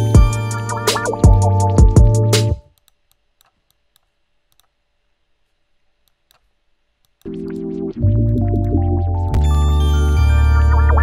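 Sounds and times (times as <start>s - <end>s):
computer mouse clicks: 2.7s - 4.8s, 5.4s - 7.7s.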